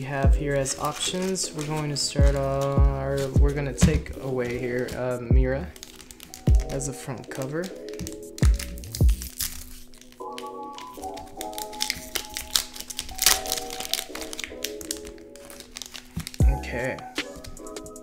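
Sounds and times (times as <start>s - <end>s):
background music: 0.0s - 18.0s
foil wrapper crinkling and tearing: 0.0s - 18.0s.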